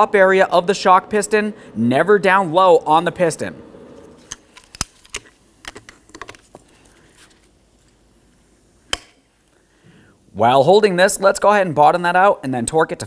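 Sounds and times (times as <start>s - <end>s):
pliers snapping shut: 8.9s - 9.2s.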